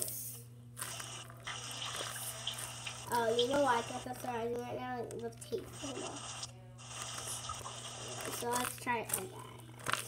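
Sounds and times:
small crackles: 0.8 - 3.5, 5.0 - 10.0
paper and tape crinkling: 6.9 - 10.0.

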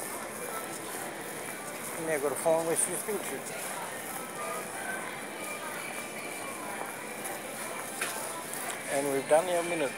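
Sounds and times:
faint voices of shoppers: 0.0 - 9.9.

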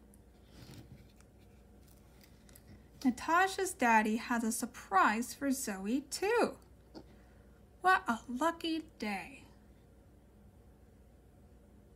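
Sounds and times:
cardboard page turning: 0.4 - 2.7.

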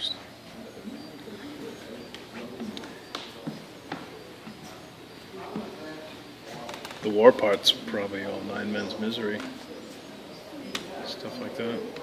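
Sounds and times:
people talking in background: 0.0 - 12.0.

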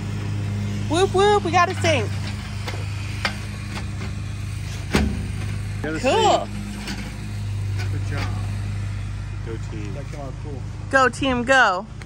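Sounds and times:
low engine-like hum: 0.0 - 12.0.

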